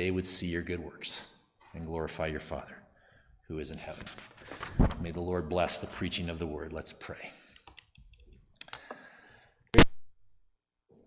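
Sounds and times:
loud sharp click: 9.7s - 10.0s.

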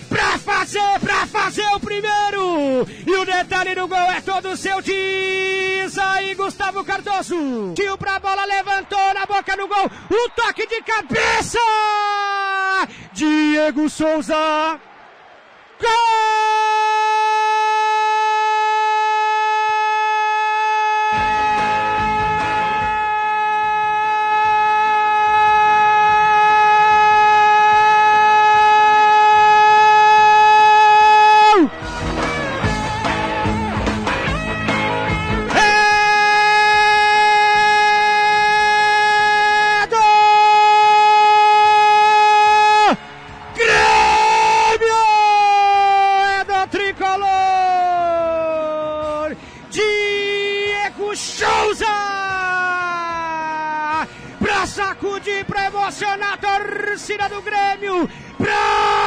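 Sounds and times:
commentator's drawn-out goal cry: 0.0s - 14.8s, 35.5s - 43.0s, 43.6s - 59.0s.

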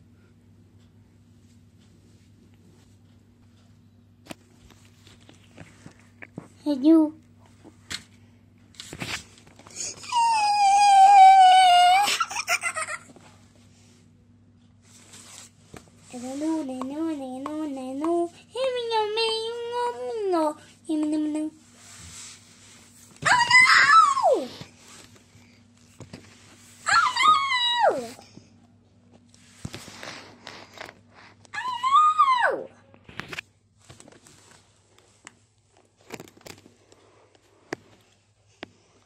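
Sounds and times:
high-pitched whining cry: 9.8s - 13.0s, 23.2s - 24.5s, 26.8s - 28.2s, 31.5s - 32.8s
child wailing: 10.0s - 12.3s, 23.2s - 24.5s, 26.9s - 28.2s, 31.6s - 32.8s.

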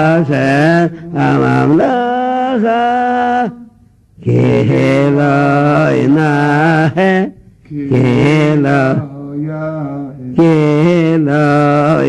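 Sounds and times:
man chanting a melody: 0.0s - 12.0s.

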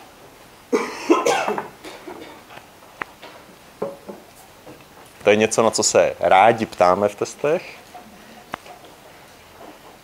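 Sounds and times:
person coughing: 0.7s - 2.3s.

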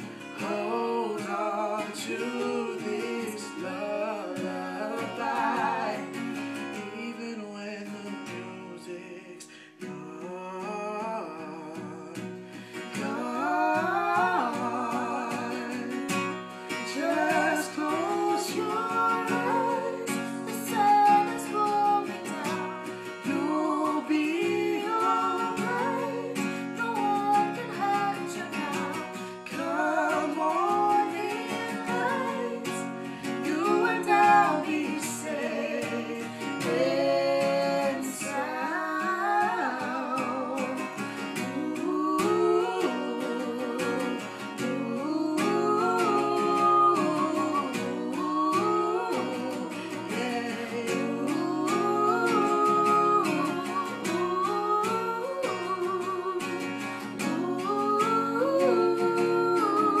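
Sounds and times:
acoustic guitar: 0.0s - 60.0s
man and woman singing duet: 0.0s - 60.0s.

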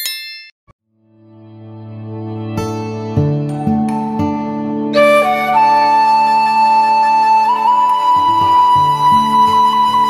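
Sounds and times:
notification bell ding: 0.0s - 0.6s.

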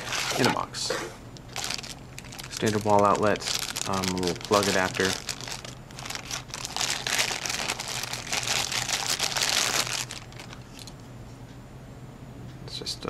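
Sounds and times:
plastic bag crinkling: 0.0s - 0.6s, 1.4s - 11.0s.

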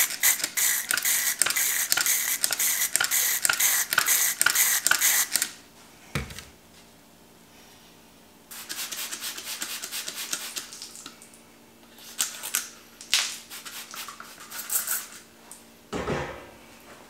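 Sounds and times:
spray bottle hissing bursts: 0.0s - 5.5s.

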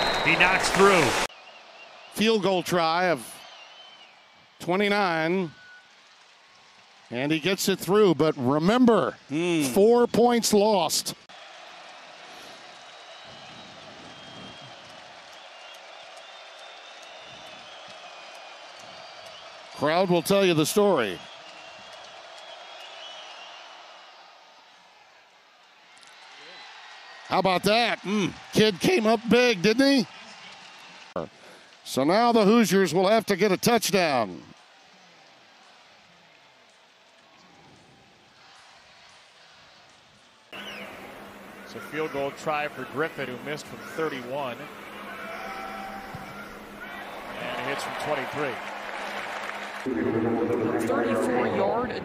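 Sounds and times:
stadium crowd din: 0.0s - 52.0s.

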